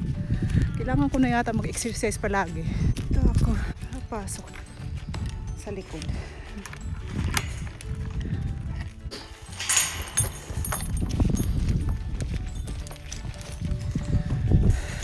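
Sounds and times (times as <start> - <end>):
faint background music: 0.0 - 15.0
wind buffeting microphone: 0.0 - 15.0.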